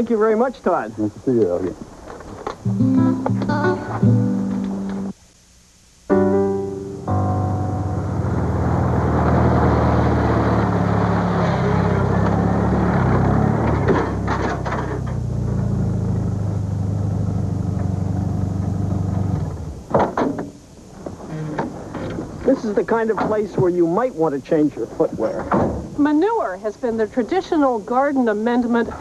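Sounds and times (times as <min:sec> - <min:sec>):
music: 0:02.6 - 0:05.2, 0:06.1 - 0:08.3
pickup truck engine running: 0:07.8 - 0:19.9.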